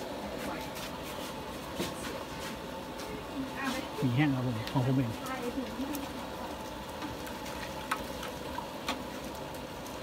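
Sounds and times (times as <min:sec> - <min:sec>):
paddle stirring broth: 0:00.0 - 0:10.0.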